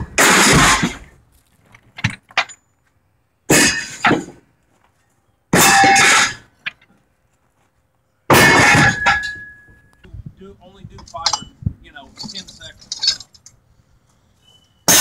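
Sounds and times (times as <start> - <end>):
scrap metal crashing and clanging: 0.0 - 1.1, 3.5 - 4.4, 5.5 - 6.5, 8.3 - 9.7.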